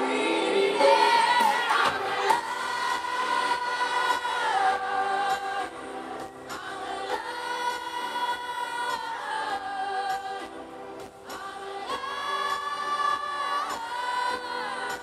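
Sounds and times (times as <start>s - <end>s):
woman singing pop: 0.0s - 10.5s
backing music: 0.0s - 15.0s.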